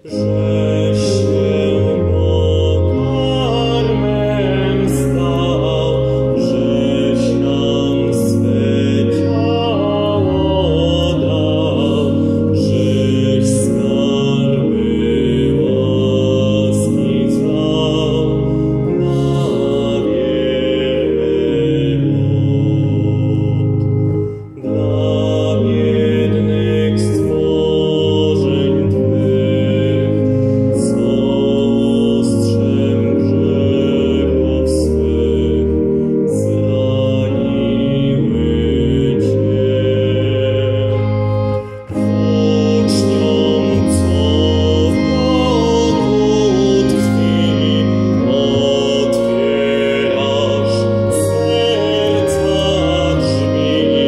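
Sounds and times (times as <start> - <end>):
electronic church organ chords: 0.0 - 54.0.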